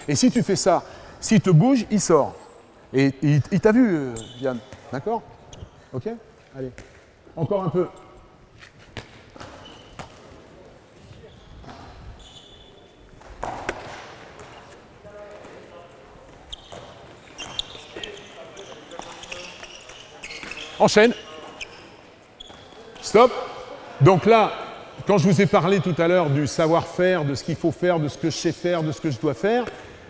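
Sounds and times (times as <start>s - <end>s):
sports shoes squeaking: 3.5s - 7.1s, 8.0s - 10.4s, 11.0s - 23.3s.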